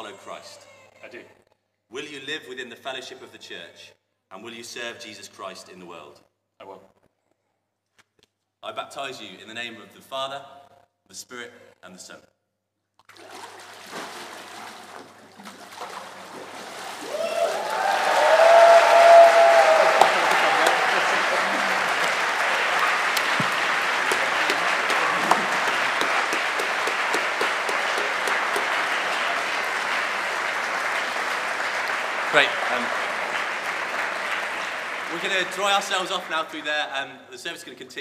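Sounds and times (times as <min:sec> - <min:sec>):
shouted cheers: 0:17.0 - 0:35.4
crowd applauding: 0:17.0 - 0:36.8.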